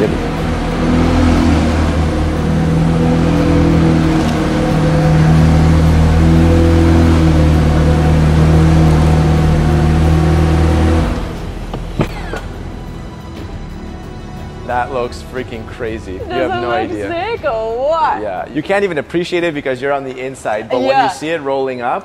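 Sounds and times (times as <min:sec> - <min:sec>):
car engine running: 0:00.0 - 0:13.2.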